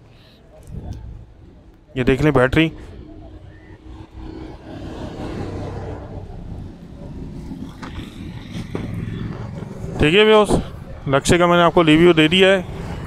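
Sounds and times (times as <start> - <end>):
vehicle engine humming: 0.0 - 13.0.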